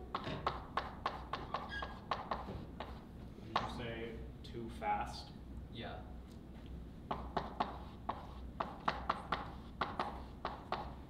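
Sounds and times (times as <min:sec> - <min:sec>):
chalk tapping and scratching: 0:00.1 - 0:03.8, 0:07.1 - 0:11.0.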